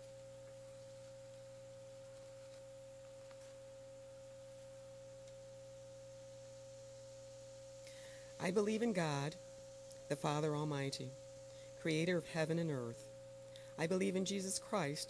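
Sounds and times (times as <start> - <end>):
faint electrical tone: 0.0 - 15.0.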